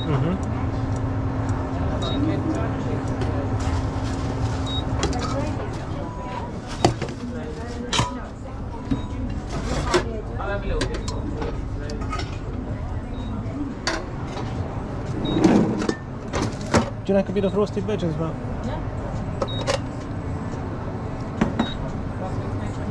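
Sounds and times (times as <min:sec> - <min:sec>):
steady low hum: 0:00.0 - 0:22.9.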